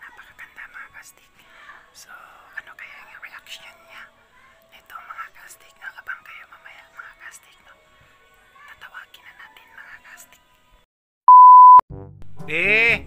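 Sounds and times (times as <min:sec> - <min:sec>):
electronic beep: 0:11.3 - 0:11.8.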